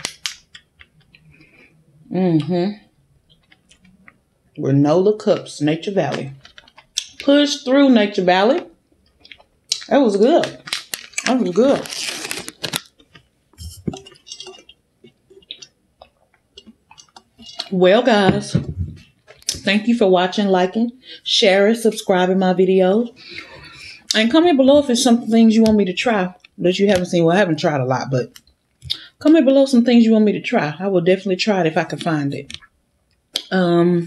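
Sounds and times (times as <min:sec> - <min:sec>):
plastic wrapper crackling: 0:00.0 - 0:01.2, 0:06.3 - 0:07.3, 0:09.1 - 0:16.2.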